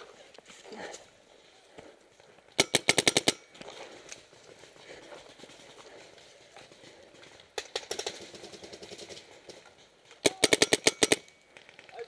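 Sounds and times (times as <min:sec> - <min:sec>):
paintball marker rapid firing: 0:02.6 - 0:03.4, 0:07.6 - 0:09.2, 0:10.2 - 0:11.3.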